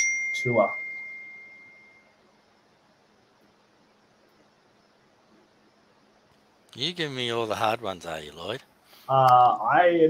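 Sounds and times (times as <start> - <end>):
high pure ding: 0.0 - 2.2
faint hiss: 2.0 - 10.0.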